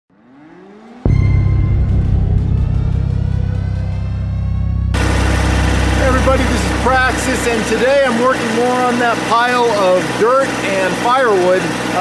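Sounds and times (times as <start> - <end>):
rising sweep: 0.1 - 10.6
music hit with sustained chord: 1.0 - 11.0
low engine hum: 1.0 - 12.0
ticking beat: 3.1 - 9.4
tractor engine idling: 4.8 - 12.0.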